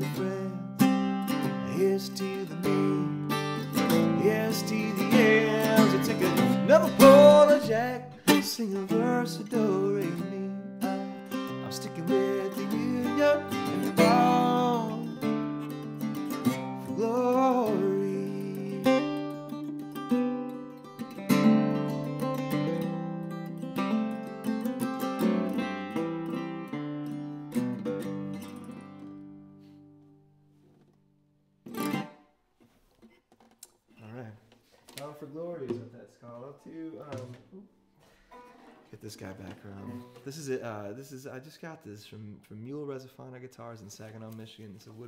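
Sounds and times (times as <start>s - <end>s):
man singing: 0.0s - 0.8s, 1.4s - 15.4s, 16.4s - 19.4s
acoustic guitar strumming: 0.0s - 30.3s, 31.7s - 32.3s, 38.2s - 40.4s.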